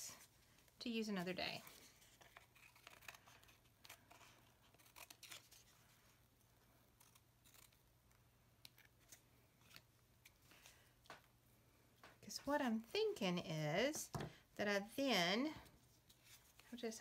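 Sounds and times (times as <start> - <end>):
scissors snipping paper: 2.2 - 5.7, 7.0 - 9.8.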